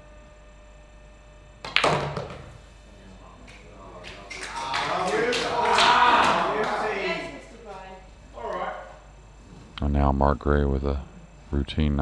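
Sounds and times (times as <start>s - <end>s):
ball dropping into pocket: 1.6s - 2.5s
pool balls clacking: 1.6s - 2.6s
crowd cheering and clapping: 4.0s - 7.7s.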